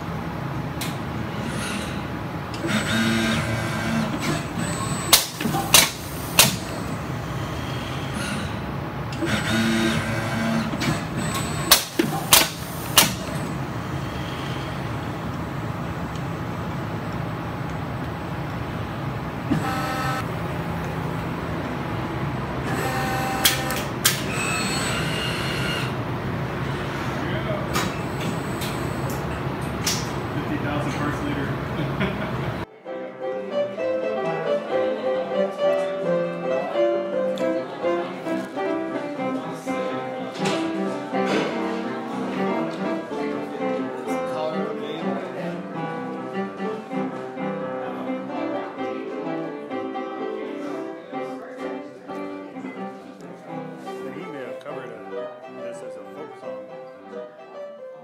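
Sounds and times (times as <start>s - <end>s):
steady machine hum: 0.0s - 32.7s
short pitched machine whine: 2.6s - 8.6s
pneumatic clipper snapping shut: 4.1s - 6.8s, 10.6s - 13.5s, 22.8s - 25.9s.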